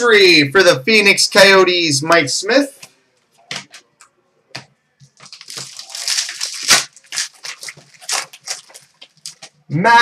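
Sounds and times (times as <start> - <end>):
cards being handled: 5.0 - 9.6
foil wrappers tearing and crinkling: 5.2 - 9.5.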